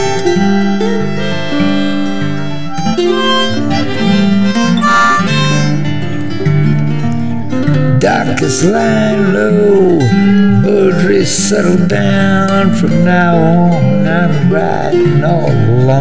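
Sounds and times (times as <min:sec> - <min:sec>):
harmonica: 0:00.0 - 0:07.2
strummed acoustic guitar: 0:00.0 - 0:16.0.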